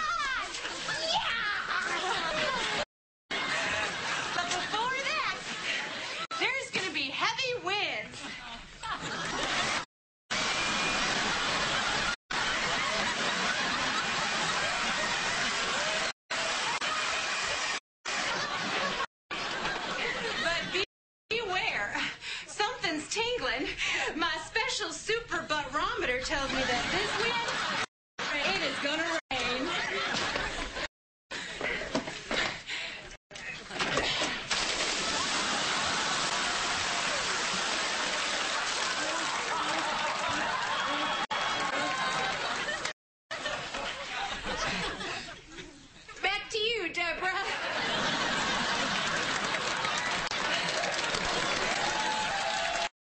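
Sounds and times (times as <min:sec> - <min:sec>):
water spraying from hose: 0:34.5 - 0:39.4.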